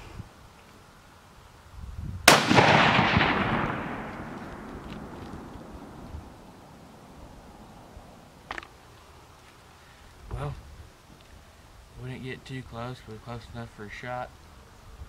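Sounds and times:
rifle shot echoing: 2.3s - 7.2s.

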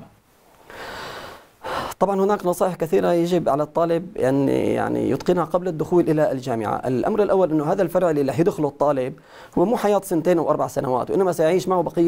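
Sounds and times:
man breathing in: 0.6s - 2.0s, 9.2s - 9.6s
man speaking: 1.9s - 12.0s.

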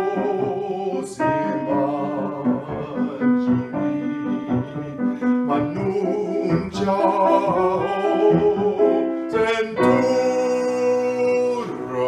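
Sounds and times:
grand piano accompaniment: 0.0s - 12.0s
man singing opera in bass voice: 0.0s - 12.0s.

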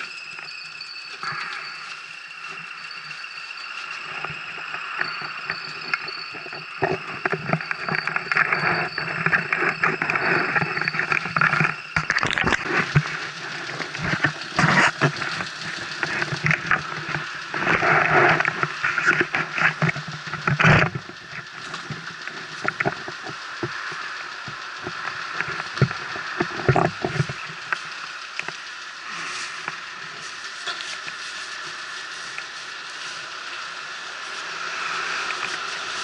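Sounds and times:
scooter engine idling: 12.7s - 36.0s.

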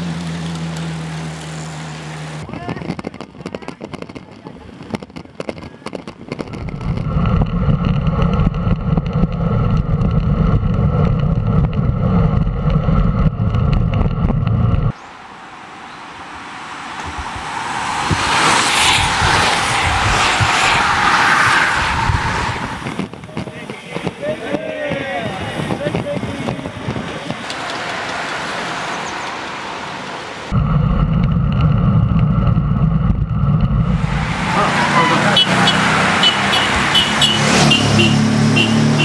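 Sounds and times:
wind rumble on microphone: 2.4s - 15.0s, 16.9s - 27.6s, 30.5s - 34.4s
bicycle tyres and freewheels hissing: 16.2s - 30.4s.

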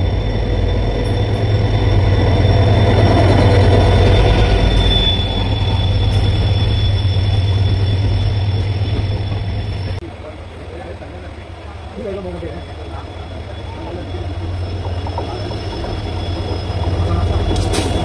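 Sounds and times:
train passing with low rumble: 0.0s - 18.0s.

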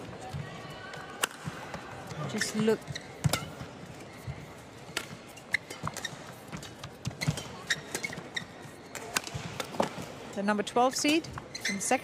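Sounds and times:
murmur of arena crowd: 0.0s - 12.0s
racket hitting shuttlecock: 1.2s - 1.5s, 2.9s - 3.7s, 4.9s - 10.1s.

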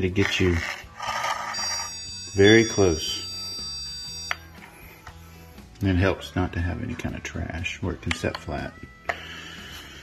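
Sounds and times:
high-pitched alert tone: 1.1s - 4.5s.

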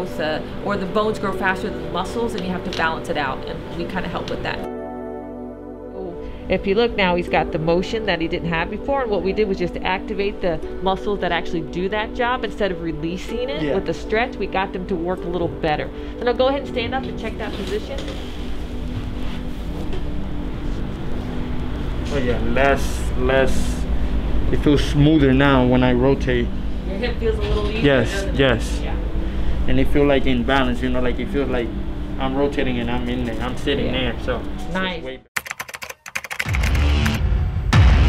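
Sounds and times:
ventilation low rumble: 6.5s - 34.4s
electronic music with heavy bass: 36.4s - 38.0s
deep falling bass hit: 36.7s - 38.0s.

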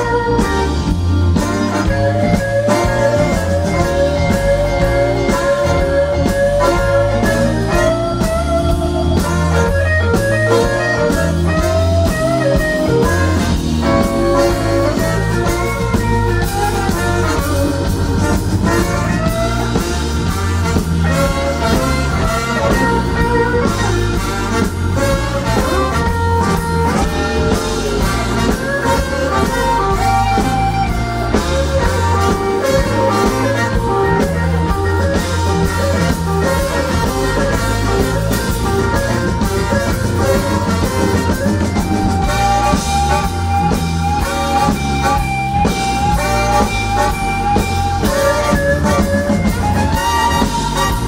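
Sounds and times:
bass: 0.0s - 51.0s
drums: 0.0s - 51.0s
electric guitar with bent notes: 0.0s - 51.0s.

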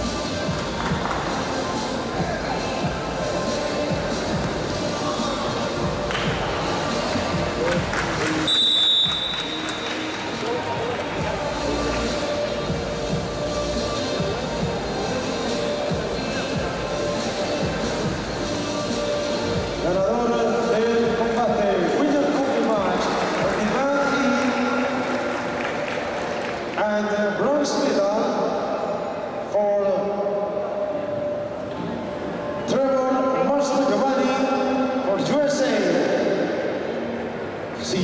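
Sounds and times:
crowd noise: 0.0s - 38.0s
referee's whistle blast: 8.4s - 9.8s
man's voice over announcing system: 19.8s - 25.2s, 26.8s - 28.9s, 29.5s - 30.6s, 32.6s - 36.5s, 37.8s - 38.0s.

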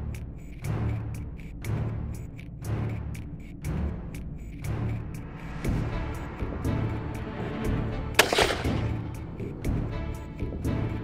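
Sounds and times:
background music light beat: 0.0s - 11.0s
gunshot: 8.2s - 9.1s.

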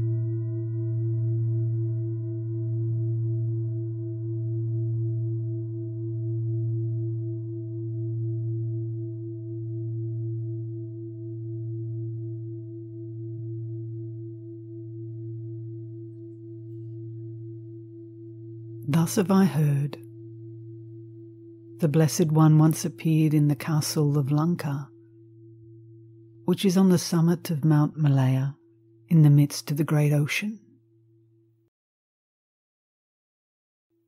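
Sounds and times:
singing bowl ringing: 0.0s - 26.9s.

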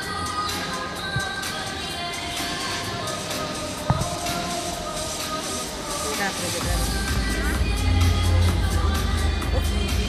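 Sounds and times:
music playing in a hall: 0.0s - 10.0s.

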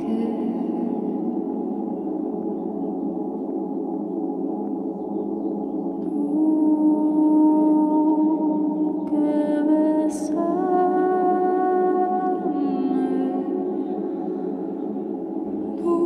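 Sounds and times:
ambient drone of sustained vocal tones: 0.0s - 16.0s.

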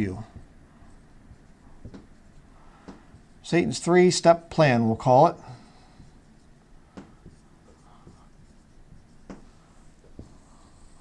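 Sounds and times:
marker writing on whiteboard: 0.0s - 3.9s, 5.6s - 11.0s.

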